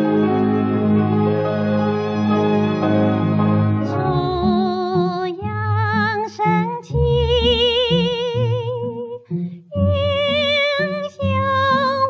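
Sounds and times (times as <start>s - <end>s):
instrumental chords: 0.0s - 5.1s
woman singing with vibrato: 4.0s - 12.0s.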